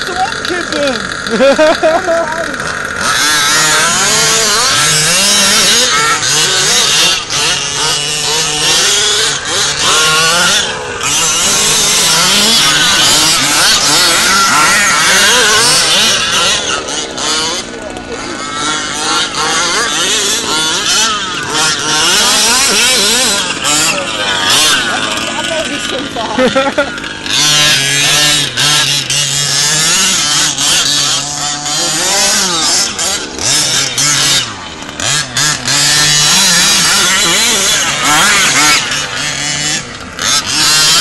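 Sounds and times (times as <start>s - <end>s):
rc buggy engines buzzing: 0.0s - 41.0s.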